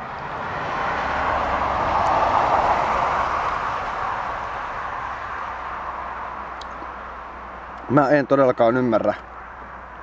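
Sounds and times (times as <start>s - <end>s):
passing vehicle road noise: 0.0s - 10.0s.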